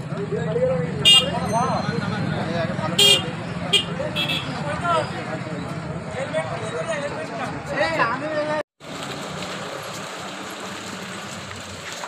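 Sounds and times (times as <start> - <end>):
crowd voices: 0.0 - 8.6
low traffic hum: 0.0 - 12.0
vehicle horn toots: 1.0 - 1.5, 3.0 - 5.0.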